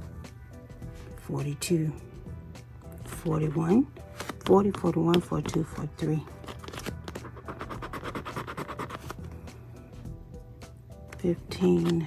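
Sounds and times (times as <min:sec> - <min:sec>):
scraper scratching a ticket: 0:06.3 - 0:09.3.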